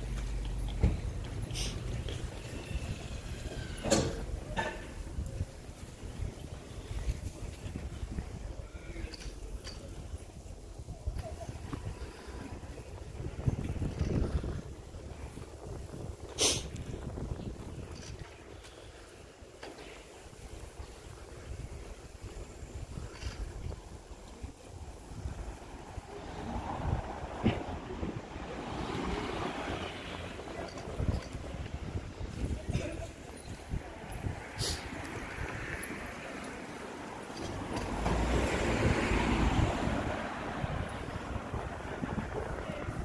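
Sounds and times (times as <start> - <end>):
wind buffeting microphone: 9.8 - 19.3, 20.1 - 43.0
broad hiss: 16.2 - 17.2, 34.5 - 35.1.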